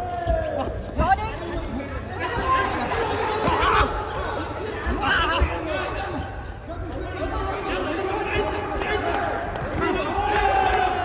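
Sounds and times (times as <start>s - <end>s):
voices calling out in echoing hall: 0.0s - 11.0s.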